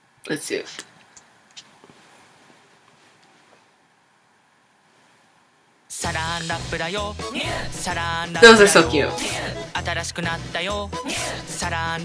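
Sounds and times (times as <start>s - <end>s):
faint room hiss: 0.0s - 10.5s
commercial music with singing: 5.9s - 12.0s.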